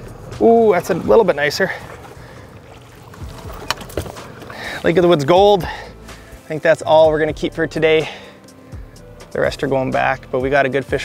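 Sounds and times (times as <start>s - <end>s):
outboard motor running: 0.0s - 6.4s
faint wind: 0.0s - 10.8s
water noise: 0.0s - 11.0s.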